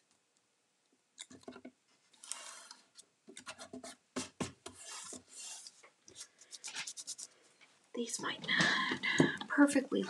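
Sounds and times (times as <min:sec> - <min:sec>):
hands rubbing sheet on wooden box: 0:04.8 - 0:07.3.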